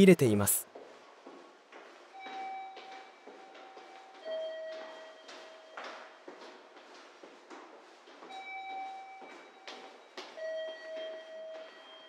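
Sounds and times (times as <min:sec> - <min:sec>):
footsteps walking: 0:00.7 - 0:12.0.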